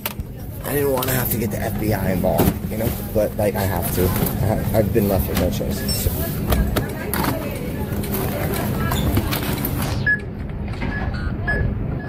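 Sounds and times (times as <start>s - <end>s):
store background noise: 0.0s - 12.0s
barcode scanner beeps: 5.7s - 6.4s, 10.0s - 12.0s.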